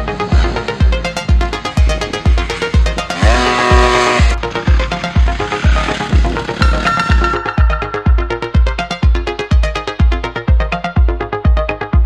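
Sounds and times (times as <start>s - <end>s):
motorbike engine: 0.0s - 9.0s
electronic dance music: 0.0s - 12.0s.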